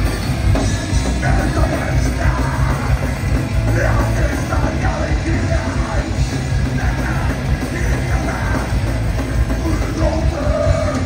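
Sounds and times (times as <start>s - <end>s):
punk rock band playing: 0.0s - 11.0s
lead vocal singing: 0.6s - 11.0s.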